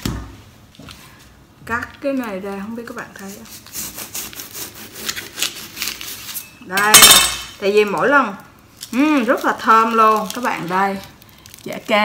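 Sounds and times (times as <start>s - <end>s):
knife sawing through frozen food: 3.2s - 6.5s.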